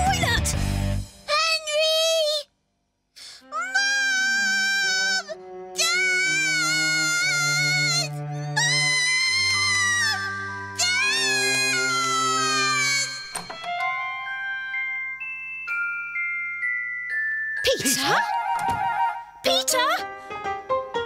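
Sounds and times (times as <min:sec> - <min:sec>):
child singing wordless notes: 0:03.4 - 0:13.3.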